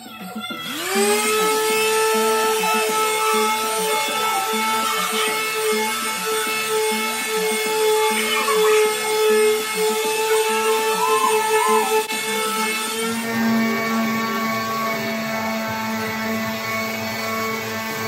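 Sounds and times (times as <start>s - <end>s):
orbital sander whining: 0.4s - 18.0s.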